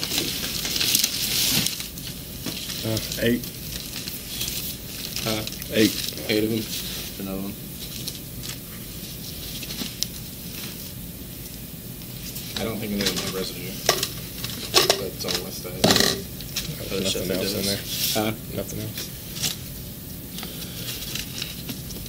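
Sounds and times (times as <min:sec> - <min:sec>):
objects rustled on a desk: 0:00.0 - 0:11.0, 0:20.7 - 0:22.0
steady hiss: 0:00.0 - 0:22.0.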